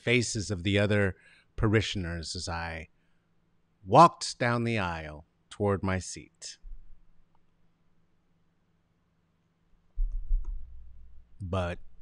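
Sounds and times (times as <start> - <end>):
microphone bumped thud: 10.0 - 10.9.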